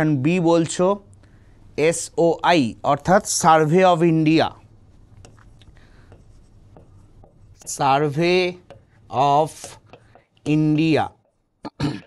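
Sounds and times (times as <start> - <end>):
stylus scratching on glass: 5.2 - 11.4.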